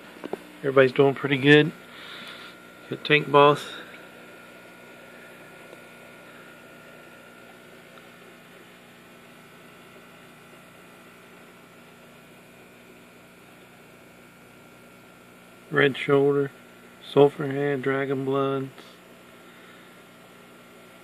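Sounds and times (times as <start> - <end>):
faint high whine: 0.0 - 21.0
low equipment hum: 0.0 - 21.0.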